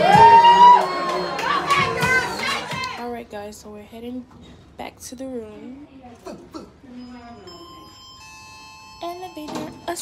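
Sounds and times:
electronic elevator chime: 6.9s - 10.0s.

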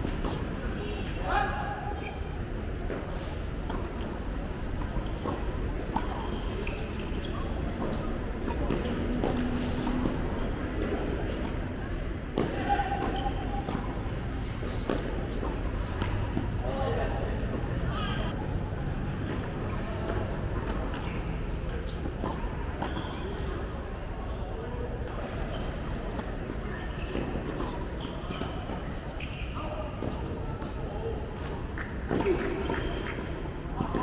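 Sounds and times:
people calling and talking: 0.0s - 34.0s
racquets hitting tennis balls: 2.9s - 17.8s, 26.0s - 34.0s.

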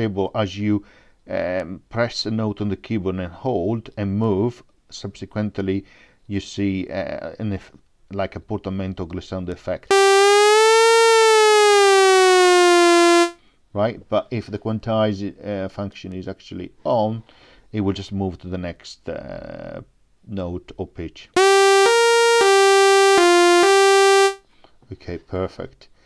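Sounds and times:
synthesizer note gliding down: 9.9s - 13.4s, 21.4s - 24.4s.

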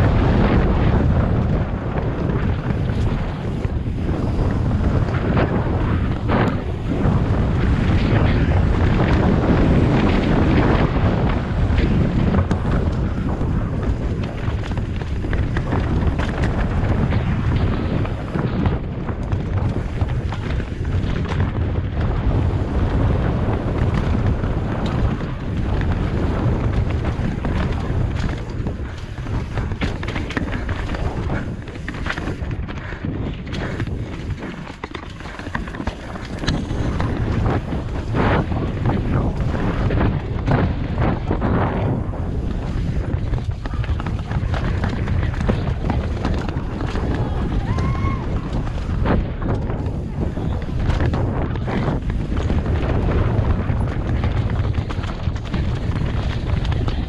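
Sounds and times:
bike rattling over rocks: 0.0s - 57.0s
tyre noise on dirt: 0.0s - 57.0s
wind buffeting microphone: 0.0s - 57.0s.

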